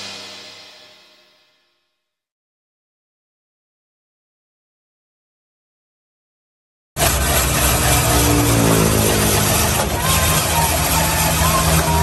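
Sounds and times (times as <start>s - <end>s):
ice-shaving machine grinding ice: 7.0s - 12.0s.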